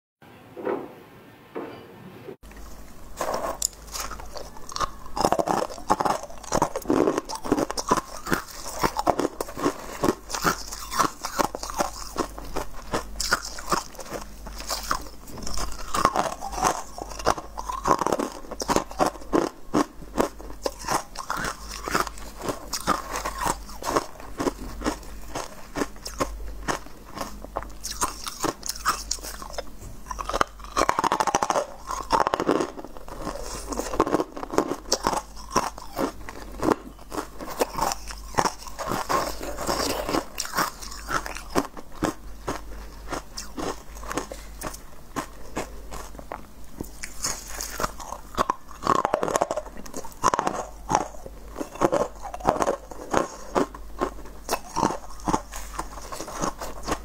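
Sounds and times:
person chewing crunchy food: 2.4s - 57.0s.

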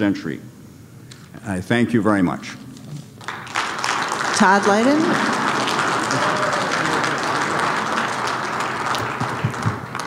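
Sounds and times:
audience applauding: 3.1s - 10.0s.

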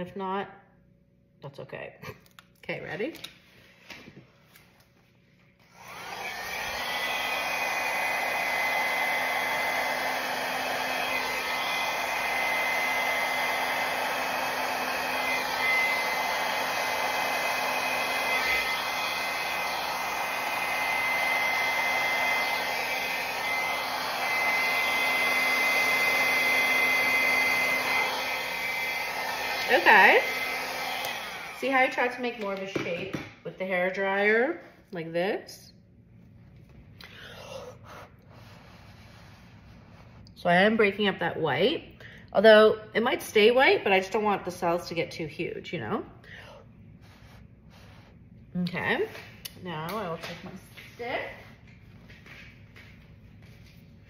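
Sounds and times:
hair dryer running with high whine: 5.6s - 35.2s, 42.4s - 46.0s, 47.0s - 53.8s.

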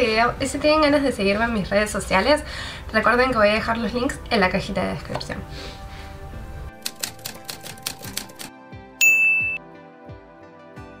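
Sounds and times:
soft background music: 0.0s - 11.0s
typewriter key clicks: 6.8s - 8.5s
typewriter bell ding: 9.0s - 9.6s.

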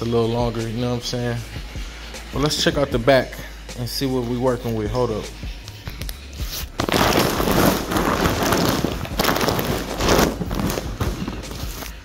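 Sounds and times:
plastic bag crinkling: 6.8s - 12.0s.

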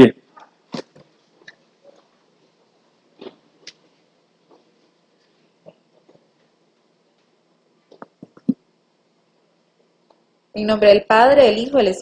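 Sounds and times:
faint knocks and rustles: 0.4s - 8.5s.

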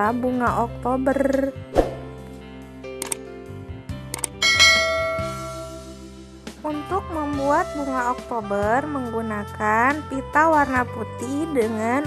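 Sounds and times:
background music: 0.0s - 12.0s
sharp clicks: 3.0s - 3.2s, 4.1s - 4.4s
bright bell ding: 4.4s - 5.8s.

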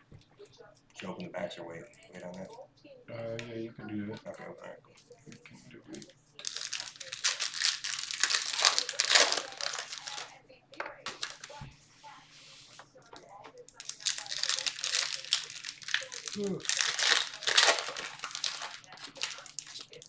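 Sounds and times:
foil wrappers tearing and crinkling: 6.0s - 10.3s, 11.0s - 11.6s, 13.7s - 20.0s.

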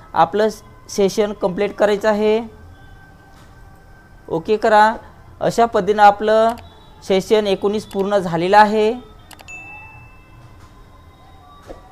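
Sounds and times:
notification bell ding: 9.3s - 11.5s.

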